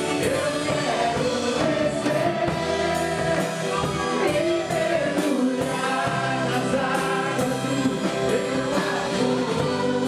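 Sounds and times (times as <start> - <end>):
group singing praise song: 0.0 - 10.0
instrumental backing: 0.0 - 10.0.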